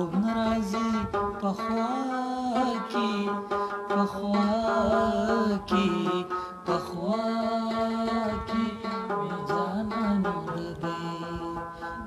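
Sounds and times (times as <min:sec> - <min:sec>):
man singing a long held note: 0:00.0 - 0:12.0
plucked lute strings: 0:00.0 - 0:12.0.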